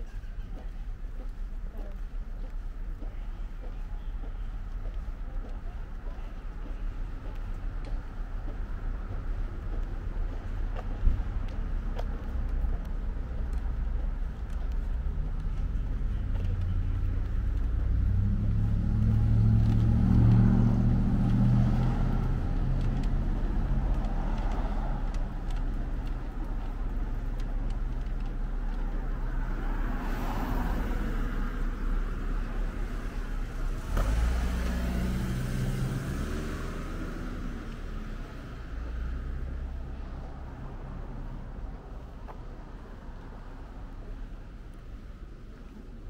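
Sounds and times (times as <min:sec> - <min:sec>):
motor vehicles passing: 0:00.0 - 0:46.0.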